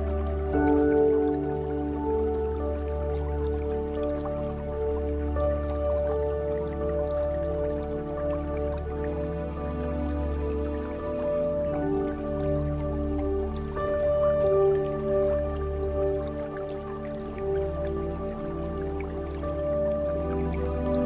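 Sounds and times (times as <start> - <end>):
ambient new-age music: 0.0 - 21.0
water drips: 0.0 - 21.0.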